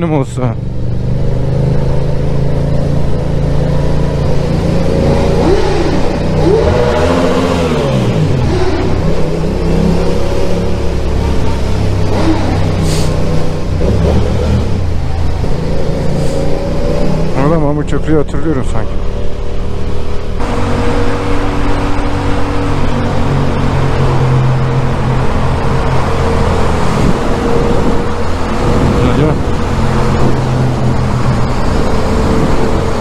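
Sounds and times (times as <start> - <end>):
motorcycle engine revving: 0.6 - 33.0.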